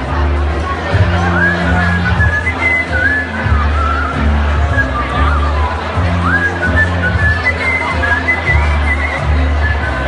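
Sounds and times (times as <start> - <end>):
party music with deep bass: 0.0 - 10.0
whistled melody: 1.1 - 10.0.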